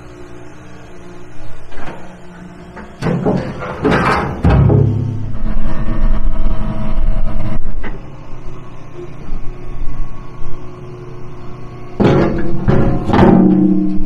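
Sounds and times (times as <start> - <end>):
diesel engine running: 0.0 - 14.0.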